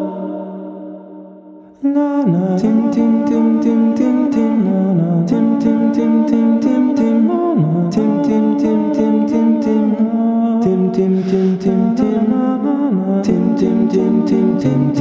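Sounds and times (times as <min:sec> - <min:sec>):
male choir singing in harmony: 0:00.0 - 0:01.2, 0:10.6 - 0:15.0.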